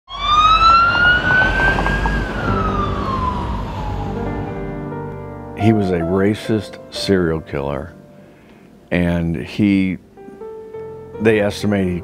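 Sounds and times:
siren wailing: 0.1 - 4.9
low rumble: 0.2 - 5.6
soft held music notes: 5.0 - 12.0.

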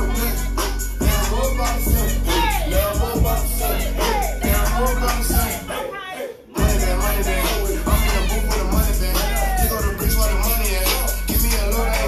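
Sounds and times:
hip hop bass beat: 0.0 - 12.0.

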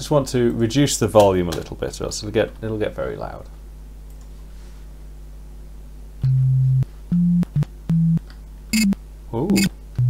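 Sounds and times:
short low sine beeps: 6.2 - 9.7.

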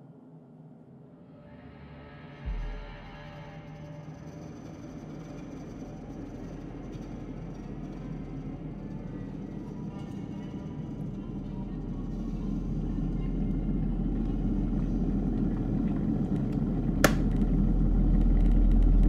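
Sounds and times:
dark low rumbling drone: 1.1 - 19.0
deep boom: 2.5 - 3.4.

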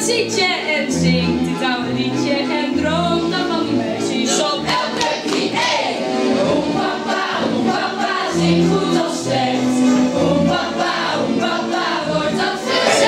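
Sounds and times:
instrumental accompaniment: 0.0 - 13.0
group of voices singing: 4.1 - 13.0.

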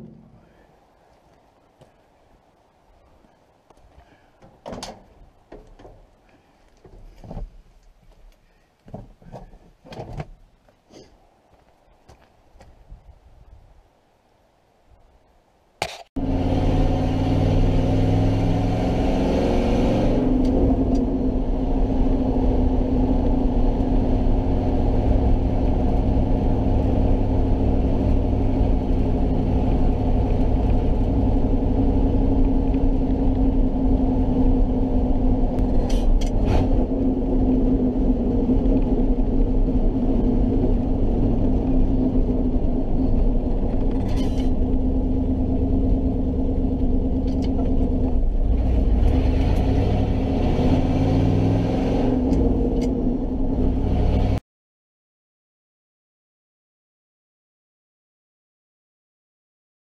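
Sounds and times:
truck engine running: 20.8 - 50.4.

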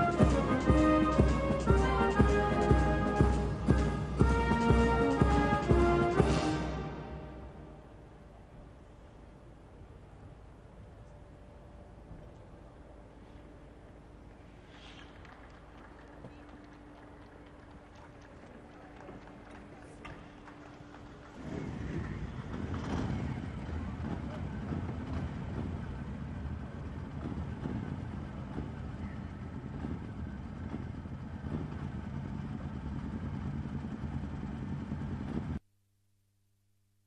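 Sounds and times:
cars pulling away: 0.0 - 8.5, 12.8 - 35.6
motorcycle engines: 0.0 - 35.6
voices: 15.1 - 30.8.

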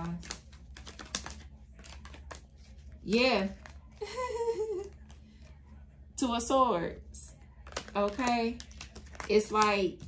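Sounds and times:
cards being shuffled: 0.0 - 5.5, 7.5 - 10.0.

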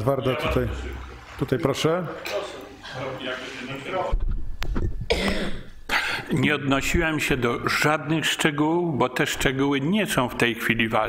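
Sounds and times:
man coughing: 5.1 - 6.3.

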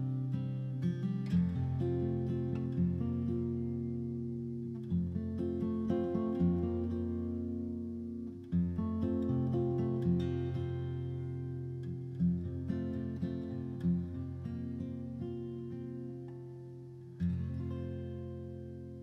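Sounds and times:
acoustic guitar: 0.0 - 19.0.

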